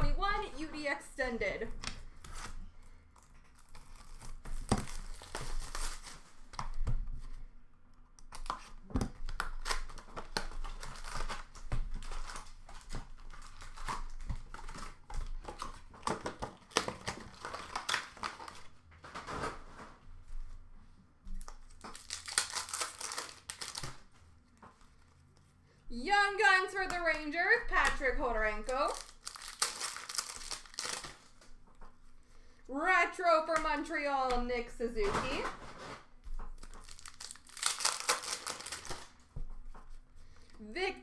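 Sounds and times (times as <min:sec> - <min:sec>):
plastic wrappers crinkling: 0:02.1 - 0:06.5, 0:08.3 - 0:19.4, 0:21.4 - 0:25.5, 0:26.2 - 0:32.0, 0:35.0 - 0:39.8
wrappers tearing: 0:03.5 - 0:06.4, 0:09.2 - 0:15.1, 0:16.1 - 0:18.7, 0:21.8 - 0:24.1, 0:26.4 - 0:31.4, 0:36.6 - 0:39.2.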